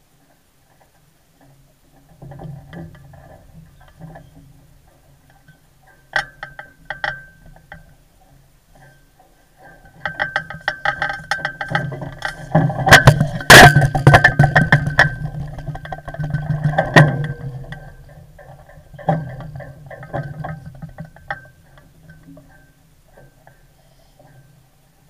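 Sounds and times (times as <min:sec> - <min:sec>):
low steady hum: 0:00.0 - 0:25.0
deck hardware clattering: 0:01.4 - 0:23.7.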